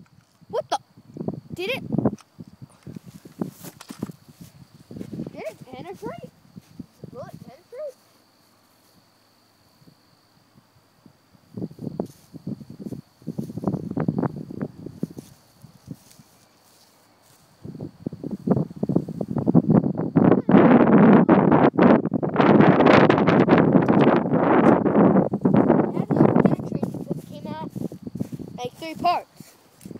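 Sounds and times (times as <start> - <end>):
wind buffeting microphone: 0.0 - 8.0, 11.0 - 16.3, 17.3 - 29.9
grass rustling: 1.9 - 10.0, 11.4 - 21.0, 22.6 - 29.9.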